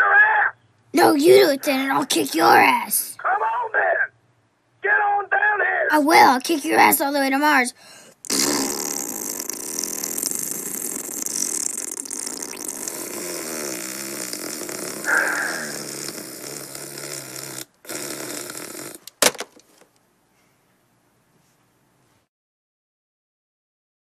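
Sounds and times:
child blowing buzzing raspberry: 7.8 - 19.1
telephone handset hung up: 19.2 - 19.7.

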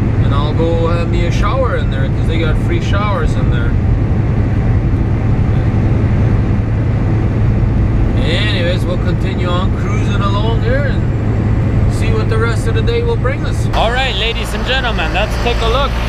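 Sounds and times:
diesel engine drone: 0.0 - 16.0
road noise: 0.0 - 16.0.

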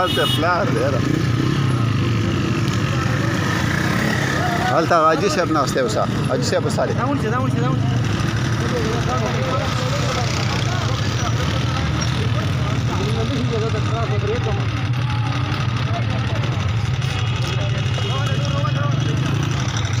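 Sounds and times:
several voices talking: 0.0 - 20.0
car engine idling: 6.4 - 20.0.

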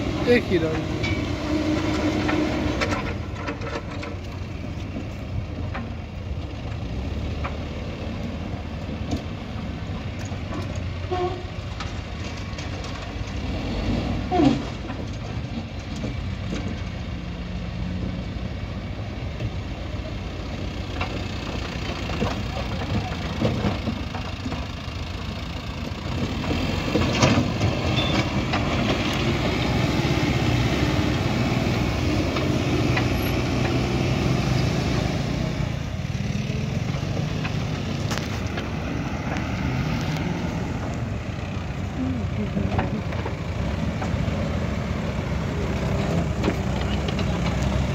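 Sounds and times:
diesel engine working hard: 0.0 - 47.9
tractor engine: 0.0 - 47.9.

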